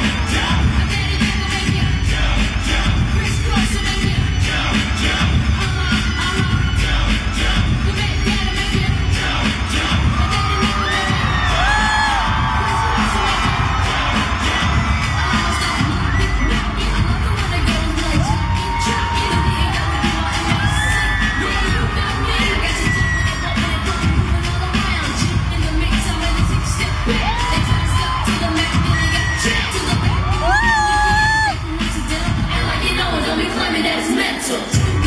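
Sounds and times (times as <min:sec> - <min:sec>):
crowd screaming and cheering: 0:00.0 - 0:35.0
loud live pop music: 0:00.0 - 0:35.0.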